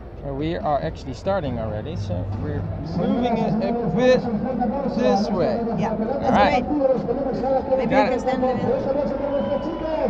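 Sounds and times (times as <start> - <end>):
people talking: 0.2 - 10.0.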